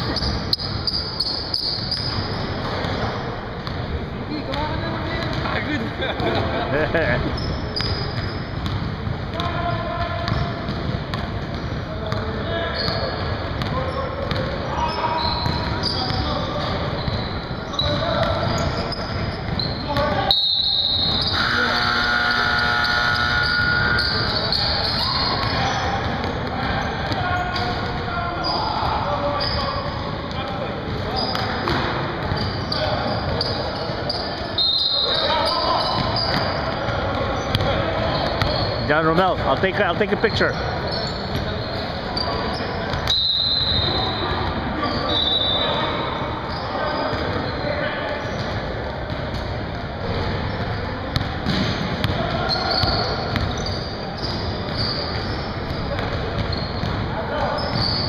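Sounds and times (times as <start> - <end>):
players calling out: 0.0 - 48.7, 50.3 - 58.0.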